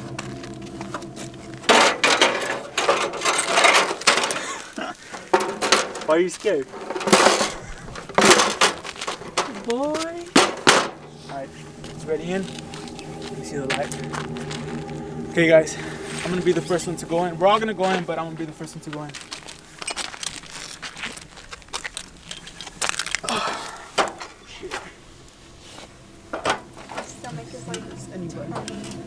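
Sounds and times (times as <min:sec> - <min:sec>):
rustling and crunching: 0:00.1 - 0:15.2, 0:18.9 - 0:26.8
ladder clattering: 0:05.2 - 0:09.6.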